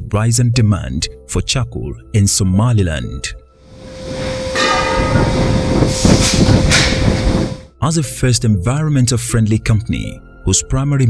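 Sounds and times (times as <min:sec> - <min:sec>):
gas rushing hiss: 0:03.6 - 0:07.7
steady hum: 0:03.6 - 0:07.7.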